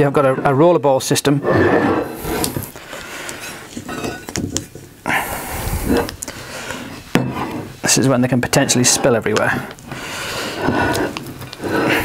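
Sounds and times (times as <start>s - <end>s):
metal clinks and scrapes on workbench: 3.4s - 4.6s.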